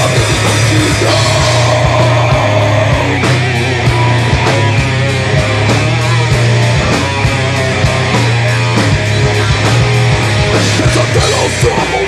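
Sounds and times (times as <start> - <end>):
distorted electric guitars and bass: 0.0 - 12.0.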